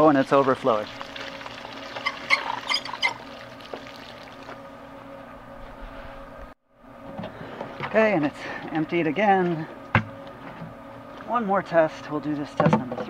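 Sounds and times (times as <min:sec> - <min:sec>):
water overflowing from watering can: 0:00.0 - 0:04.6
faint steady hum: 0:00.0 - 0:13.0.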